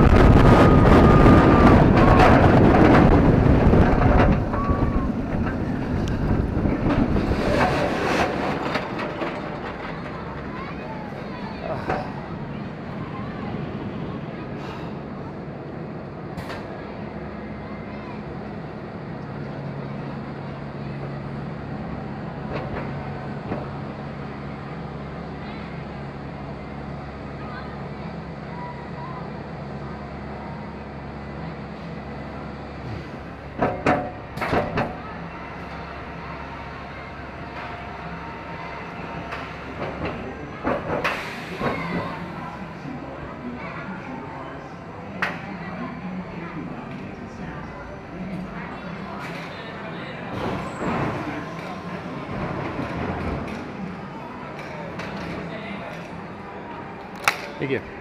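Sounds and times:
roller coaster wheels rumbling: 0.0s - 58.0s.

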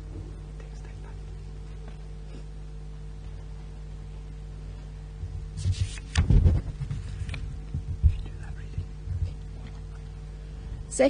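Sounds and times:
steady electrical hum: 0.0s - 11.0s
faint whispering: 0.5s - 1.3s, 8.1s - 9.0s
soft low thumps on microphone: 5.2s - 10.0s.

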